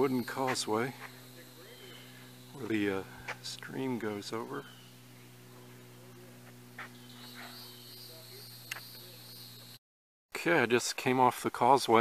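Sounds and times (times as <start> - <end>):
low steady hum: 0.0 - 9.8
steady high buzz: 0.0 - 9.8.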